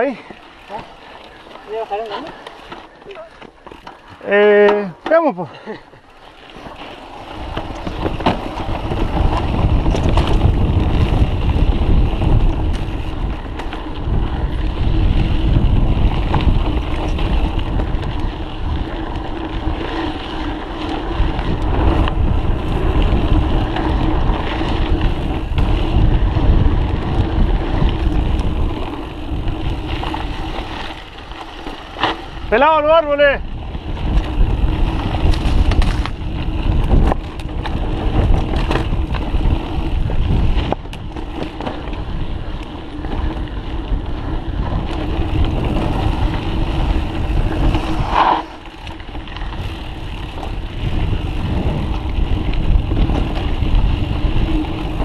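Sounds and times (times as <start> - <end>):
bike rattling over rough ground: 0.0 - 55.0
wind rushing over microphone: 7.2 - 55.0.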